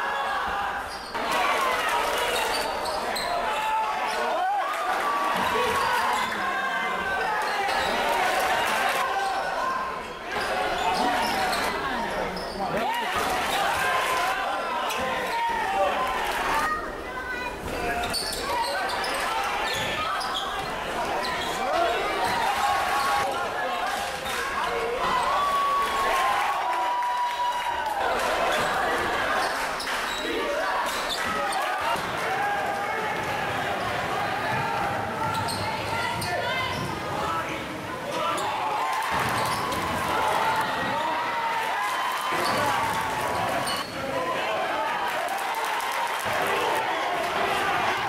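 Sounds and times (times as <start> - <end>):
murmur of voices: 0.0 - 48.0
sneakers squeaking: 0.8 - 1.2, 2.3 - 3.4, 10.3 - 12.8, 17.9 - 22.5, 30.9 - 31.6, 33.8 - 37.2, 38.1 - 40.0, 43.6 - 44.0.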